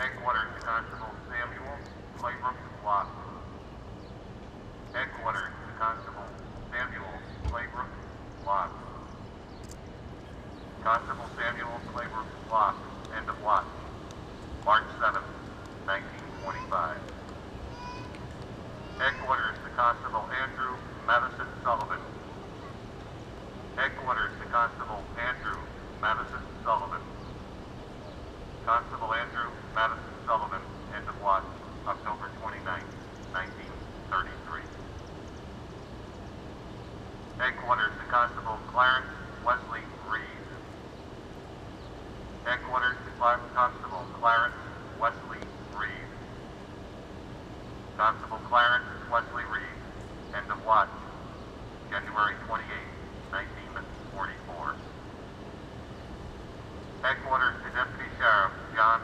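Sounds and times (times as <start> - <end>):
dispatcher speaking over radio: 0.0 - 3.6, 4.9 - 9.1, 10.7 - 14.0, 14.6 - 17.2, 18.8 - 22.8, 23.7 - 27.2, 28.6 - 34.8, 37.4 - 40.7, 42.4 - 46.3, 47.9 - 54.9, 57.0 - 59.0
steady low hum: 0.0 - 59.0.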